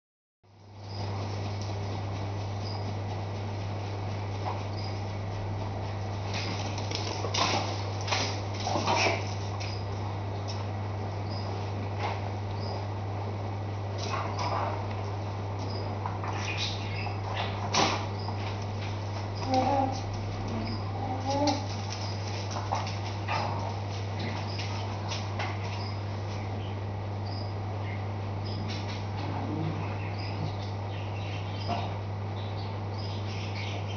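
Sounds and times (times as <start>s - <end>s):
aquarium pump hum and hiss: 0.5s - 33.9s.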